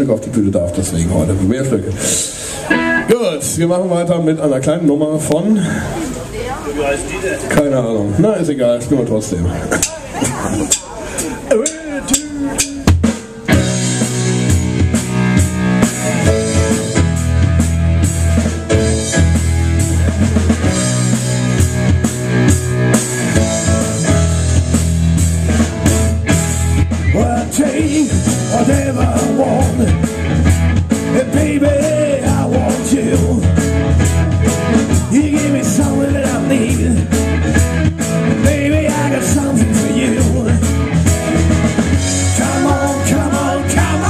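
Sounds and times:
live rock band playing: 0.0s - 7.5s, 9.5s - 44.0s.

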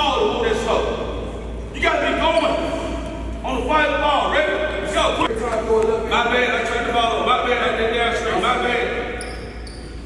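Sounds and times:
sneakers squeaking on floor: 2.1s - 3.4s, 8.5s - 10.0s.

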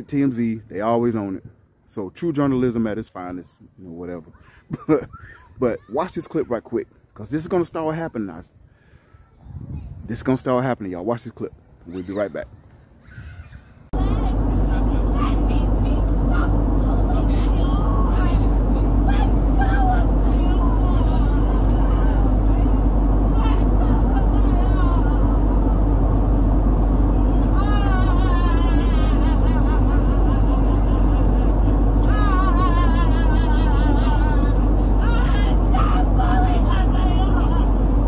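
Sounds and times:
raised passenger voices: 13.1s - 38.0s
airliner cabin drone: 13.9s - 38.0s
high wavering cry: 27.0s - 37.8s.

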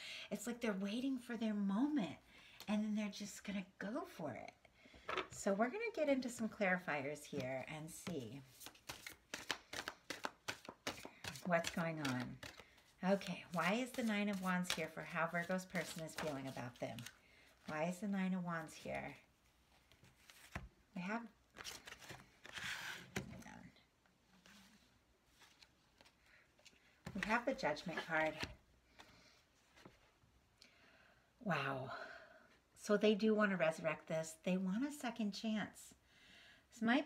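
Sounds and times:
cards being shuffled: 7.8s - 17.2s, 19.8s - 20.7s, 21.5s - 23.5s, 24.4s - 30.1s.

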